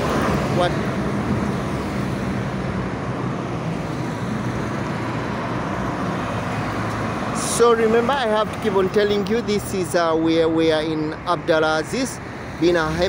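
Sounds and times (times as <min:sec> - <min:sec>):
road traffic passing: 0:00.0 - 0:13.0.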